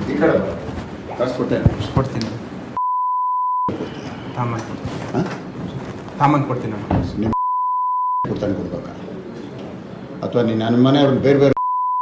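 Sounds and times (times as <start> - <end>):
high censor beep: 2.8 - 3.7, 7.4 - 8.3, 11.6 - 12.0.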